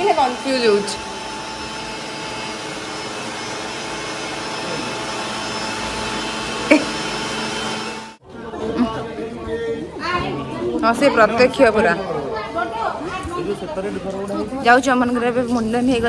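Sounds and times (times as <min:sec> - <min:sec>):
machine whirring hum: 0:00.0 - 0:08.2.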